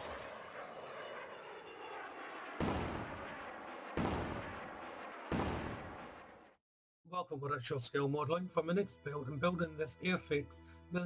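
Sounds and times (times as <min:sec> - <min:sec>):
sudden booms: 0:02.6 - 0:06.6.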